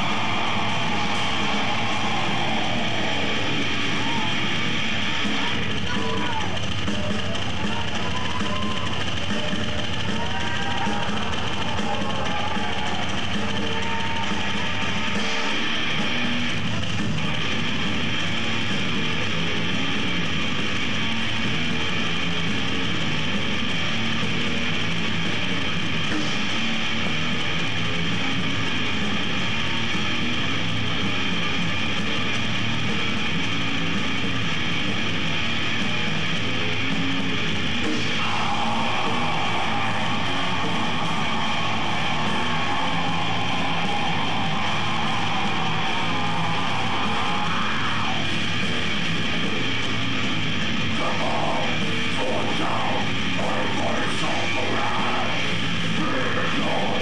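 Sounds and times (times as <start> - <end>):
death metal band playing: 0.0 - 57.0.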